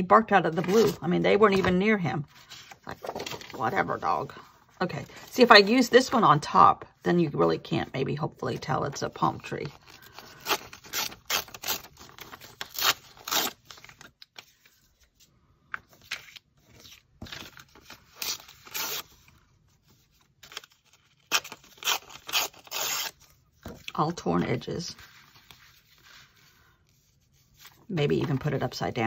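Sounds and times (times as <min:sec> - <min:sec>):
paper being torn: 0:10.3 - 0:14.0, 0:20.4 - 0:23.3.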